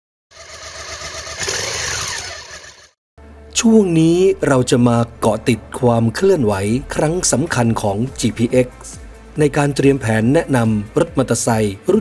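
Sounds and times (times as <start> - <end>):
motorcycle engine: 0.3 - 3.0.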